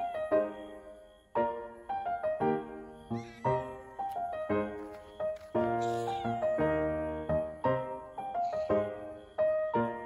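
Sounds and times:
gentle piano music: 0.0s - 10.0s.

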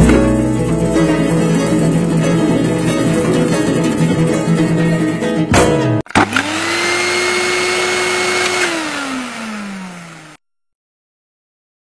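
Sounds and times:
plucked-string music: 0.0s - 6.1s.

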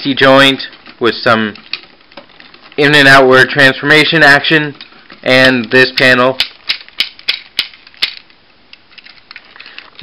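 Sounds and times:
plastic parts ticking: 0.4s - 3.2s, 4.8s - 10.0s.

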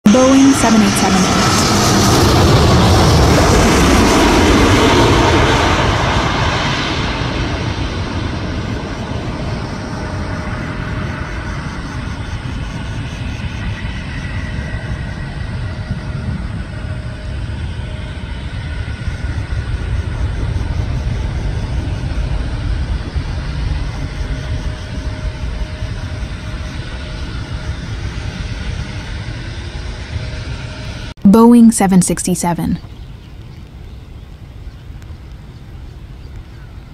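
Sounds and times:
airliner rumbling on runway: 0.0s - 31.2s
jet engine roar and whine: 0.0s - 36.9s.

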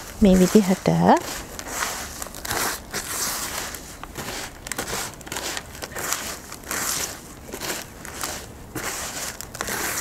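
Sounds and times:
hand rubbing potting mix: 0.0s - 10.0s.

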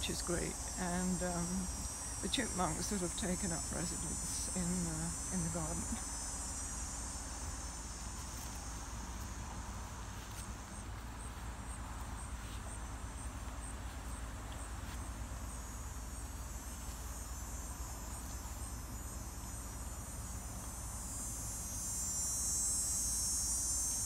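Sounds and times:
high insect buzz: 0.0s - 24.0s
insects chirping: 0.0s - 24.0s.

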